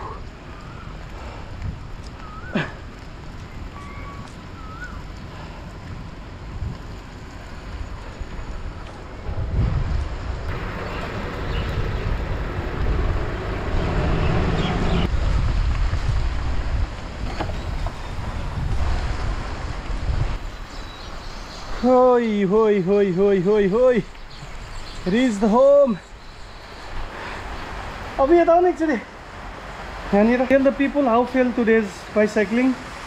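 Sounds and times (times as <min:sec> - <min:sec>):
wind rushing over microphone: 0:00.0 - 0:21.8.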